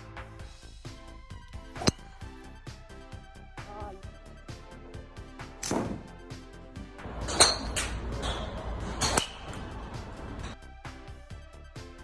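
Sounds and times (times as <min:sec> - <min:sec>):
background music with beat: 0:00.0 - 0:12.0
club striking golf ball: 0:01.6 - 0:02.4
golf club swishing: 0:01.6 - 0:02.4.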